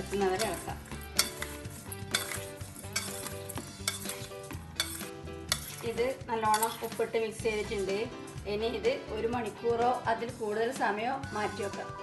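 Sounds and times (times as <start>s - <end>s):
spoon clinking on steel bowl: 0.0s - 7.1s.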